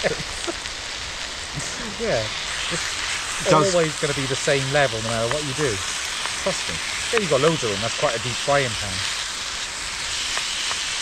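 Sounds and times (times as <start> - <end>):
food sizzling in a frying pan: 0.0 - 11.0
small pops of frying food: 0.0 - 11.0.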